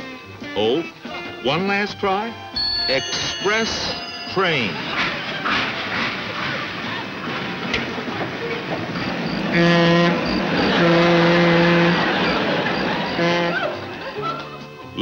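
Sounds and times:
low train horn blasts: 2.6 - 14.0
locomotive chugging: 2.6 - 15.0.

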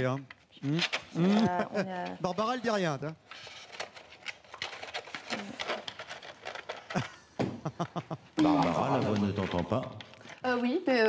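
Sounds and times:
small handling clicks and rustles: 0.0 - 8.2.

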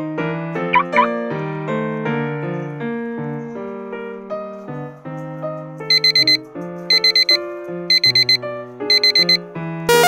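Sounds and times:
piano music: 0.0 - 10.0
alarm clock beeping: 5.9 - 10.0.

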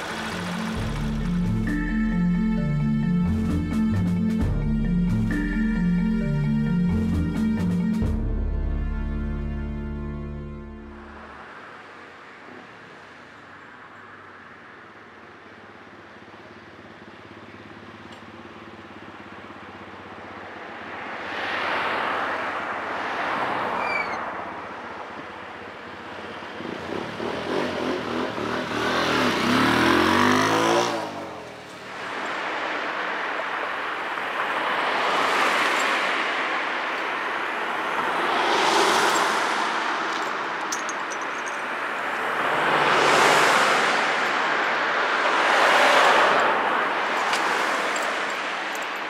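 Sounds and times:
motorbike engine revving: 0.0 - 1.8, 26.6 - 31.5
traffic passing: 0.0 - 3.8, 9.3 - 49.0.

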